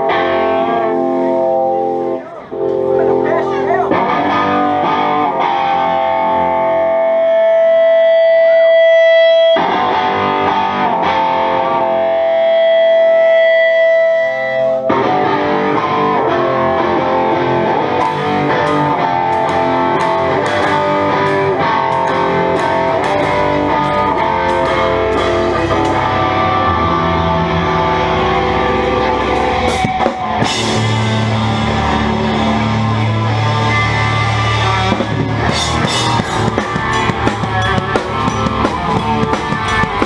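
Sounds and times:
distorted electric guitar: 0:00.0 - 0:40.0.

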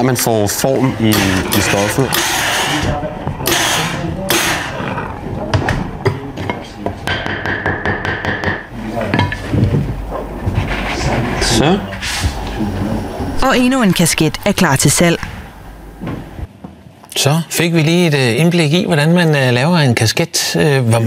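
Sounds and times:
steam iron hissing: 0:01.1 - 0:04.7.

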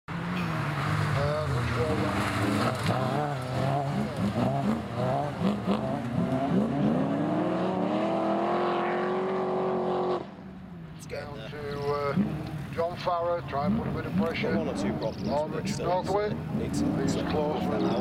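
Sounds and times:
race car engines revving: 0:00.1 - 0:18.0.

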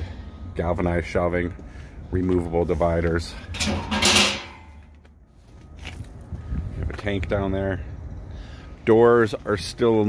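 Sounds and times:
metal shelf scraping rustle: 0:02.6 - 0:04.9.

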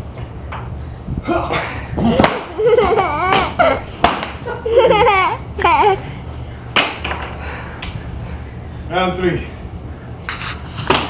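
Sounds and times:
people laughing and whooping: 0:02.0 - 0:06.0.

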